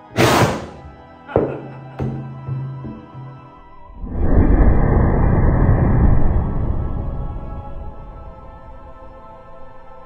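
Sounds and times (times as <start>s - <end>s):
whoosh of burning gas: 4.0s - 9.2s.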